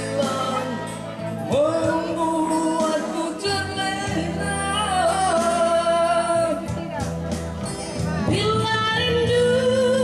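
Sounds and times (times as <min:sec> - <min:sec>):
man singing a ballad: 0:00.0 - 0:06.8, 0:08.3 - 0:10.0
backing track over speaker: 0:00.0 - 0:10.0.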